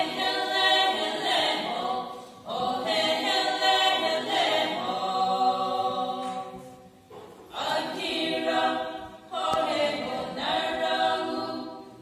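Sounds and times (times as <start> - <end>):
women's choir singing: 0.0 - 12.0.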